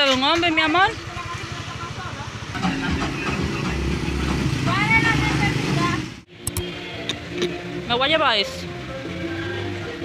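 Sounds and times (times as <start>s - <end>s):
motor vehicle engine running: 0.0s - 6.3s.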